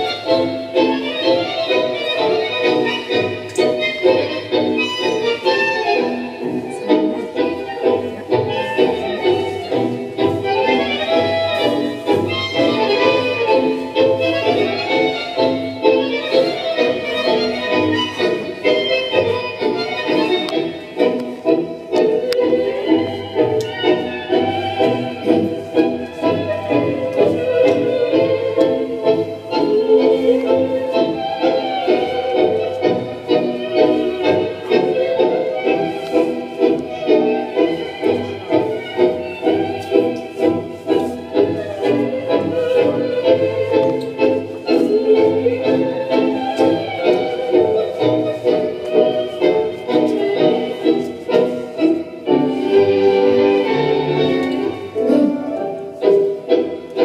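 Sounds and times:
tango music with bandoneon: 0:00.0 - 0:57.0.

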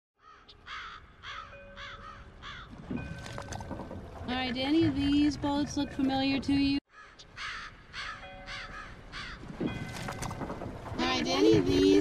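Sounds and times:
seagulls crying: 0:00.2 - 0:02.8, 0:06.9 - 0:09.8.

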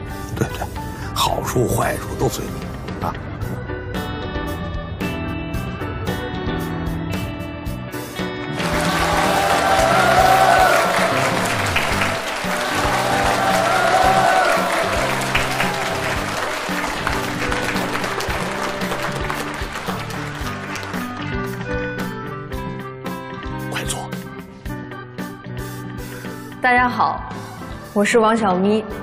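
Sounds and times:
background music with bass line: 0:00.0 - 0:29.0
people cheering: 0:08.5 - 0:21.2
audience applauding: 0:08.5 - 0:21.8.

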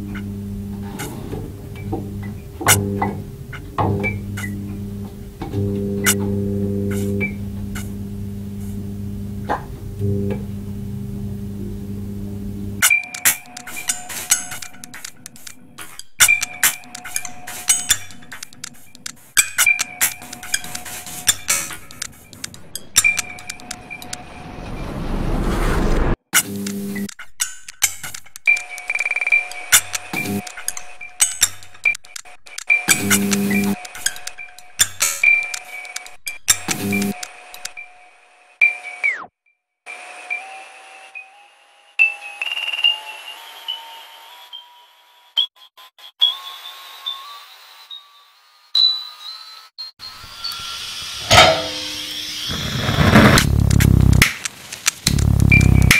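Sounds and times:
noisy low rumble: 0:00.0 - 0:12.8, 0:51.3 - 0:54.2, 0:55.1 - 0:55.9
low noise: 0:00.0 - 0:26.2, 0:51.2 - 0:54.2, 0:55.1 - 0:55.9
sharp clicks: 0:12.8 - 0:24.2, 0:26.4 - 0:37.9, 0:52.9 - 0:55.9
electronic beeping tones rising: 0:55.1 - 0:55.9.

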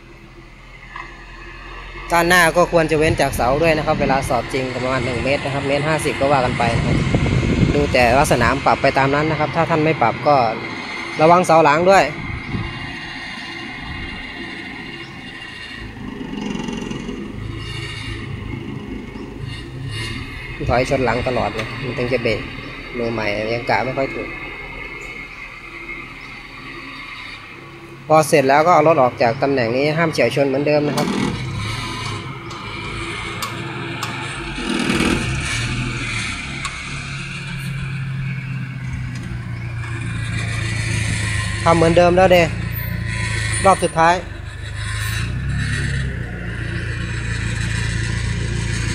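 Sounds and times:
car engine at low revs: 0:00.0 - 0:48.9.

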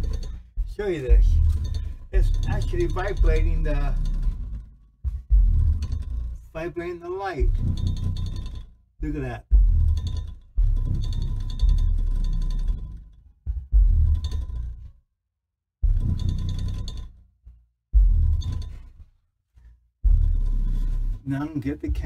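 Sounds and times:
music with heavy deep bass: 0:00.0 - 0:15.0, 0:15.8 - 0:17.2, 0:18.0 - 0:19.2, 0:20.0 - 0:22.0.

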